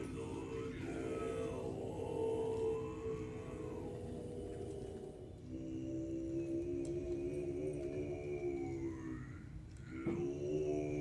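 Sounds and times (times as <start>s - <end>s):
monks chanting low notes: 0.0s - 11.0s.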